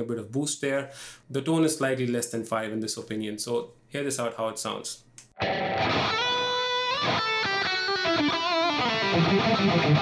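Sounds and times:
overdriven electric guitar lead: 5.4s - 10.0s.

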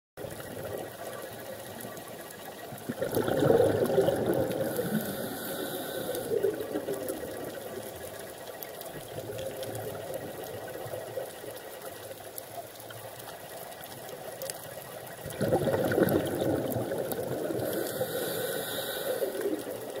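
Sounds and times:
underwater rush of water: 0.2s - 20.0s.

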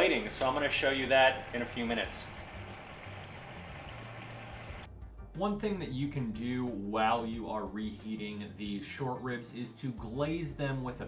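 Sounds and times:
liquid bubbling and sizzling in a pan: 2.2s - 4.9s.

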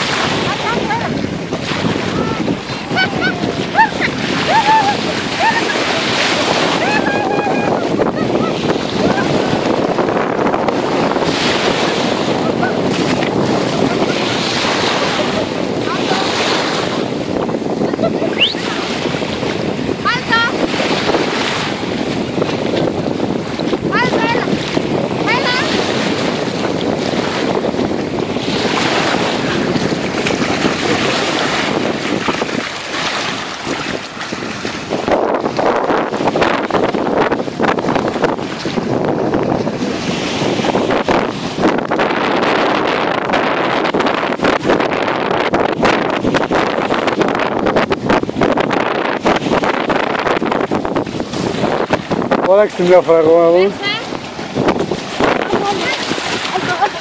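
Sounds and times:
small waves washing ashore: 0.0s - 57.0s
wind buffeting microphone: 0.0s - 57.0s.

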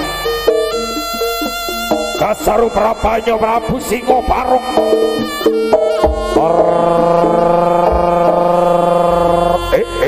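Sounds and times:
held melodic note over drone: 0.0s - 10.0s.

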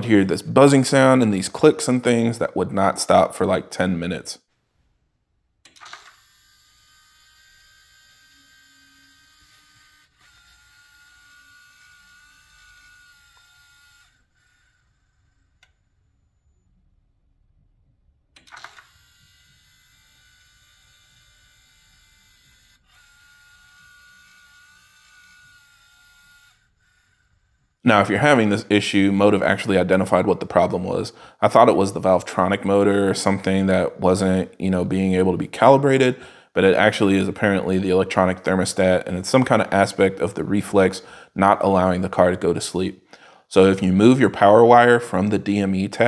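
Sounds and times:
faint electrical buzz: 0.0s - 46.0s.

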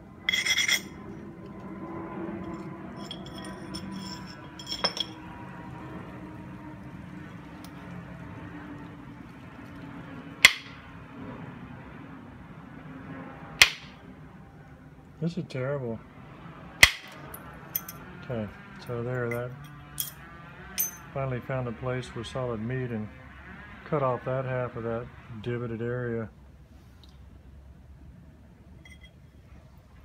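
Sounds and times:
stone clinking and grating: 0.3s - 1.0s, 2.4s - 5.2s
light scraping on stone: 2.4s - 5.3s
antler striking flint knocks: 10.4s - 10.8s, 13.6s - 13.9s, 16.8s - 17.2s.

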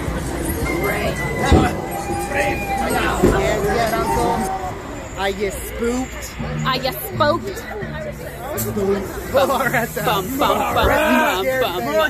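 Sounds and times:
people's voices: 0.0s - 12.0s
hiss: 9.0s - 11.4s.

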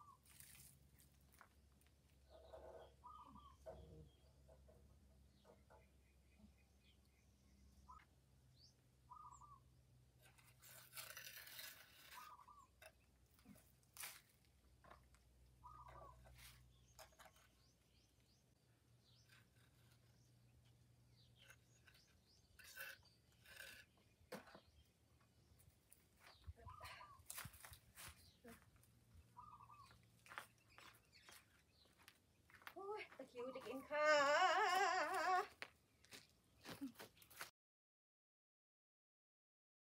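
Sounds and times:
bird calls: 2.2s - 4.6s, 5.3s - 9.7s, 12.1s - 13.6s, 15.6s - 25.6s, 26.2s - 32.6s
scraping on concrete block wall: 10.1s - 15.2s, 15.8s - 25.1s.

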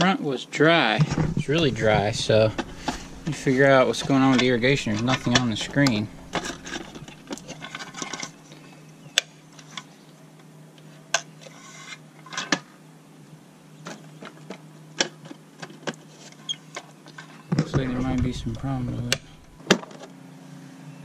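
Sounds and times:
faint steady hum: 0.0s - 21.0s.

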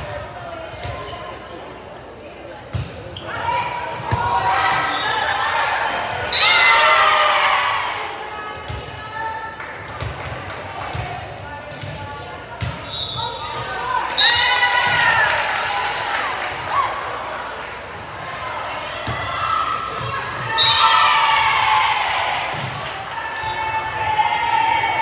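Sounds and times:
crowd cheering: 13.8s - 17.4s.

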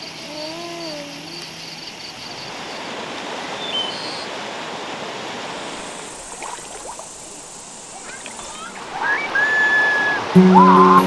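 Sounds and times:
insects chirping: 0.0s - 11.0s
animal wavering call: 8.6s - 11.0s.

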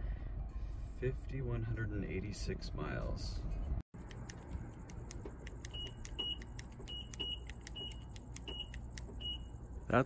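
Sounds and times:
car warning beeper: 5.6s - 9.6s.

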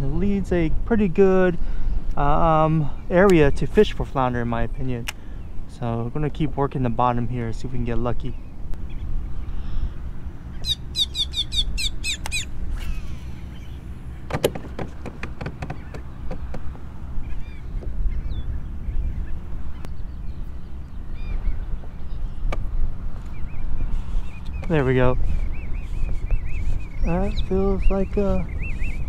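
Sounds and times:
bird calling in falling notes: 10.5s - 14.1s
sharp clicks: 12.1s - 12.4s.

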